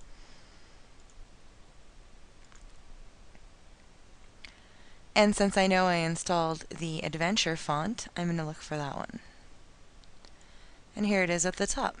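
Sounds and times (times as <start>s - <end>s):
computer mouse clicks: 1.0s - 1.3s.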